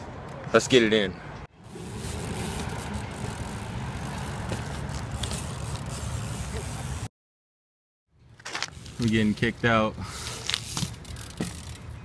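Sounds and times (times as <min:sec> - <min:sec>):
bike tyres rolling on asphalt: 0:01.6 - 0:07.1, 0:08.4 - 0:12.0.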